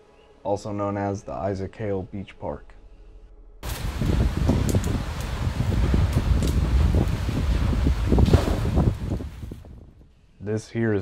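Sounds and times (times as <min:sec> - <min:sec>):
lava fountain roar: 0:03.6 - 0:09.6
sharp crackles: 0:03.6 - 0:09.6
wind on microphone: 0:03.6 - 0:10.1.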